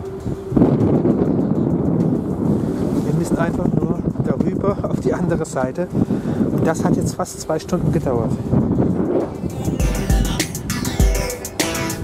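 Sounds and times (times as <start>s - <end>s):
ferry engines humming: 0.0s - 12.0s
wind buffeting microphone: 0.0s - 12.0s.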